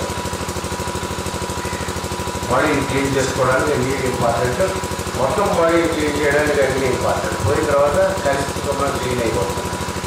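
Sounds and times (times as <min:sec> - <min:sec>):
pulsing machine hum: 0:00.0 - 0:10.0.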